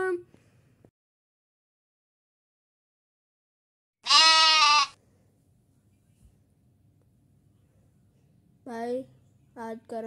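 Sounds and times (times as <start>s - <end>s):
loud pitched cry: 4.0s - 5.0s.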